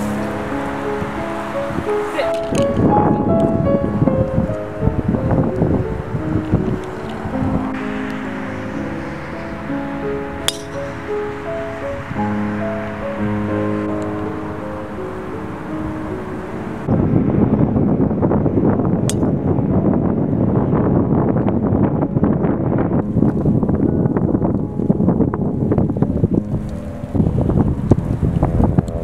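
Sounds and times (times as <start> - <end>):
piano music: 0.0 - 29.0
wind buffeting microphone: 0.0 - 29.0.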